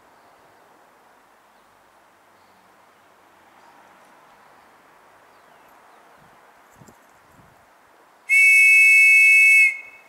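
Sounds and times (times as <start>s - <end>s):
shrill whistle blast: 8.3s - 10.0s.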